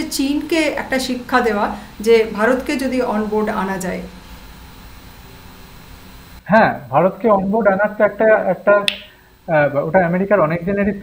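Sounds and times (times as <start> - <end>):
man talking: 6.5 - 8.9, 9.5 - 11.0
sharp click: 8.9 - 9.1.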